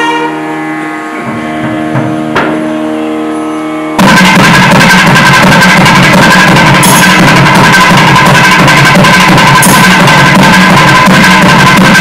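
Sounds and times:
double-reed horn holding note: 0:00.0 - 0:04.0.

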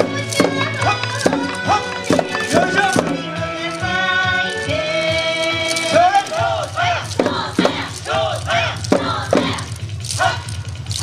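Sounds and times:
crowd shouting chant calls: 0:05.8 - 0:10.6.

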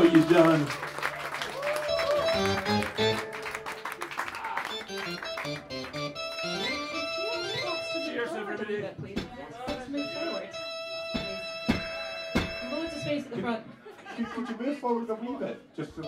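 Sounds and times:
loud band chord: 0:01.9 - 0:08.2
electric guitar single notes: 0:09.9 - 0:13.2.

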